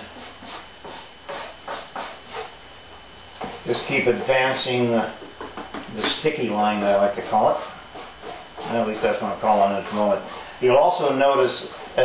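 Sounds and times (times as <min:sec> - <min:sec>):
brush strokes spreading epoxy: 0:00.0 - 0:02.5, 0:03.4 - 0:05.1, 0:06.0 - 0:12.0.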